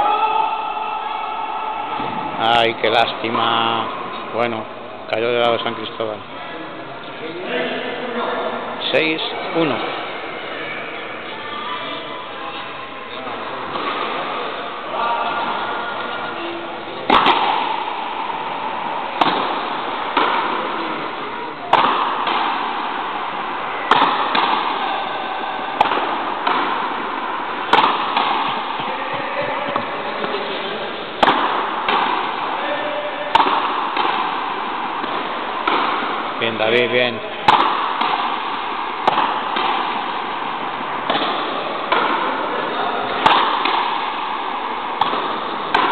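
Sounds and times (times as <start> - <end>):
rubber ball cracked by rackets: 17.0 - 18.5, 19.2 - 23.2, 23.8 - 25.1, 25.7 - 28.8, 31.2 - 32.6, 33.3 - 36.5, 37.4 - 45.9.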